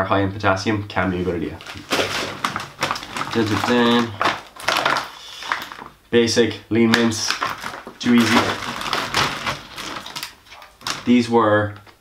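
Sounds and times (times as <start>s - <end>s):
plastic bags rustling: 1.4s - 6.0s, 6.8s - 11.4s.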